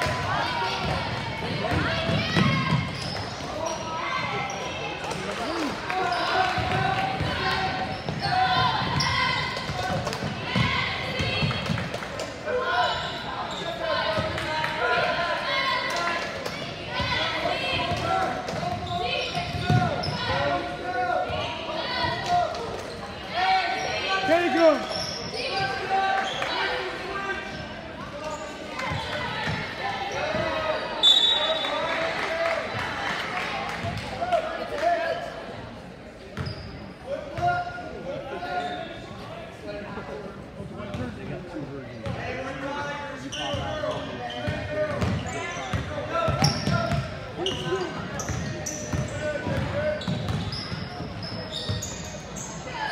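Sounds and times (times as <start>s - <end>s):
spectators' voices echoing: 0.0s - 52.9s
sneakers squeaking: 0.1s - 11.9s, 12.6s - 14.4s, 16.5s - 31.8s, 36.3s - 37.6s, 38.4s - 39.1s, 43.2s - 52.9s.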